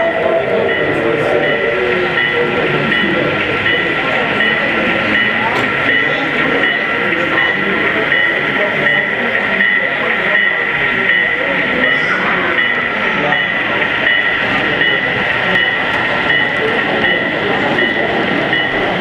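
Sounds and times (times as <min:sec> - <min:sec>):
crowd chatter: 0:00.0 - 0:19.0
model train diesel sound: 0:00.0 - 0:19.0.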